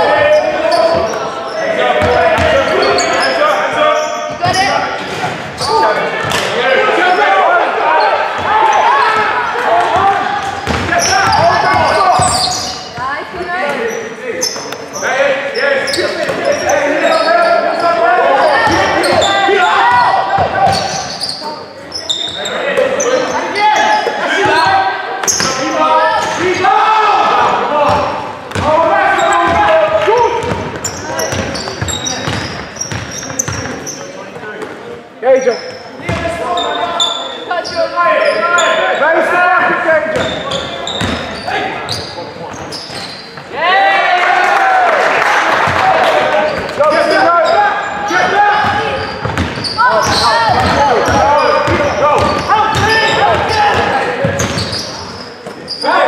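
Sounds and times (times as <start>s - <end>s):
voices calling out: 0.0s - 34.6s, 35.3s - 56.0s
basketball bouncing on wooden floor: 10.0s - 12.4s, 30.4s - 33.8s, 41.0s - 41.2s, 48.7s - 54.7s.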